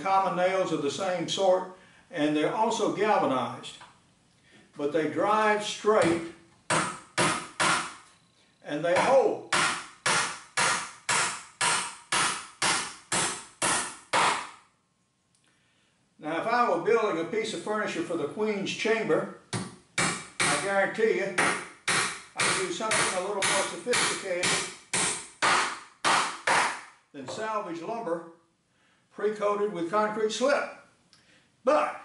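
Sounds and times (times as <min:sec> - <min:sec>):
hammer driving nails into wood: 0:06.0 - 0:08.0, 0:09.0 - 0:14.6, 0:19.5 - 0:20.7, 0:21.4 - 0:26.9.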